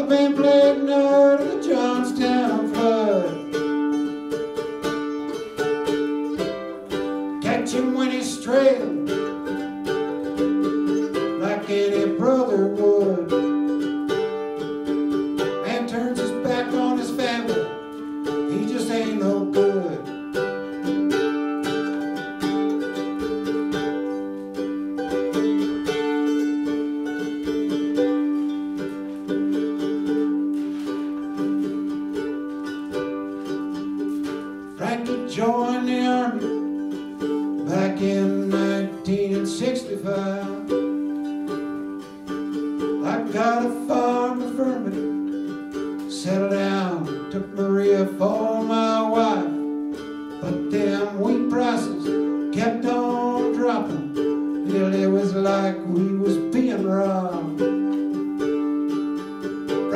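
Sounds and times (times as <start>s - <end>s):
acoustic string instrument strumming: 0.0s - 59.9s.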